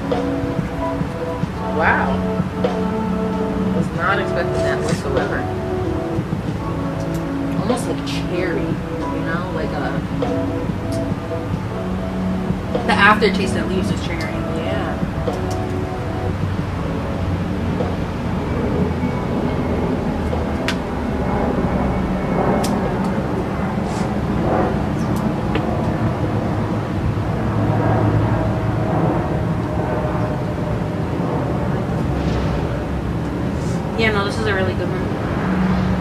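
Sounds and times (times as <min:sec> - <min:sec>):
low outdoor rumble: 0:00.0 - 0:36.0.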